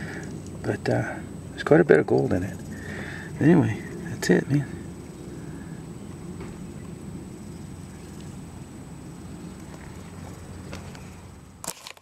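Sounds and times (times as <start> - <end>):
low background rumble: 0.0 - 11.7.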